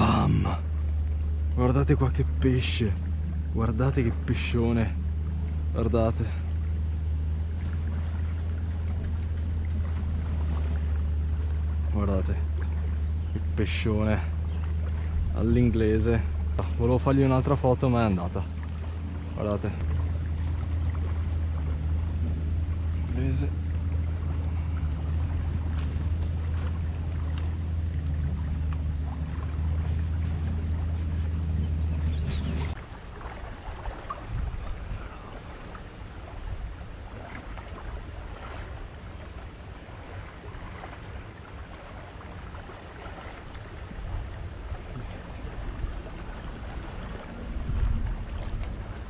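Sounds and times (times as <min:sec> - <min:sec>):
motor droning: 0:00.0 - 0:49.0
wind on microphone: 0:33.6 - 0:35.4, 0:43.9 - 0:49.0.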